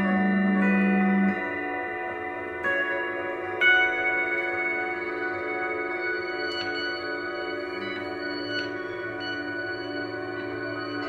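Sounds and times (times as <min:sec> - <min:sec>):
singing bowls ringing: 0:00.0 - 0:11.0.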